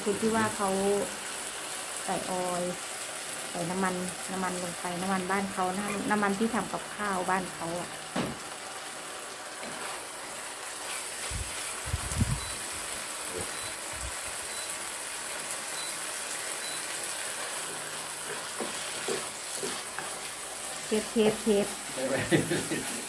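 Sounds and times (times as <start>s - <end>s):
food sizzling in a pan: 0.0s - 23.0s.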